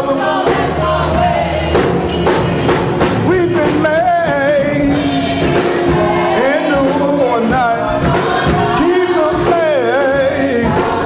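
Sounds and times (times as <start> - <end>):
man singing lead: 0.0 - 1.4, 3.2 - 11.0
gospel choir singing: 0.0 - 11.0.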